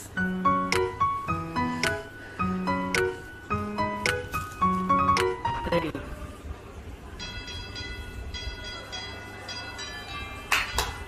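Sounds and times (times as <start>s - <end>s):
tinkly bell-like tune: 7.2s - 10.6s.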